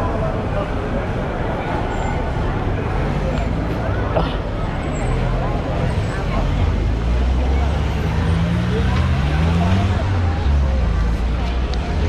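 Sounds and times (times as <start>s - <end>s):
people talking: 0.0s - 12.0s
vehicle engine pulling away: 4.9s - 12.0s.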